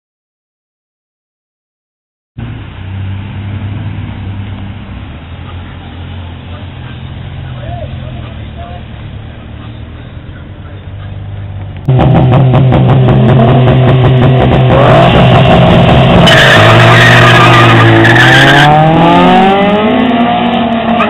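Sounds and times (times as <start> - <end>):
sports car engines idling: 2.4 - 17.5
engine revving: 11.0 - 21.0.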